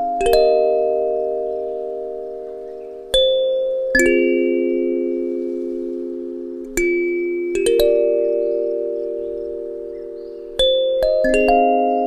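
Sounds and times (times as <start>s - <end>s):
slow kalimba music: 0.0s - 12.0s.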